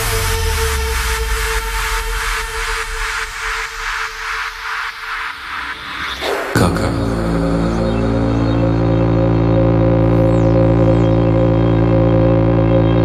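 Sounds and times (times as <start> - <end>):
electronic droning chord: 0.0 - 13.0
low bass note: 6.6 - 13.0.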